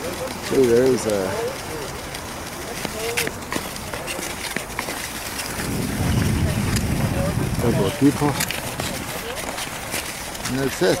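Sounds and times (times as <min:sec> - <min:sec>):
skate blades scraping on ice: 0:00.0 - 0:11.0
wind rumble on microphone: 0:05.3 - 0:10.4.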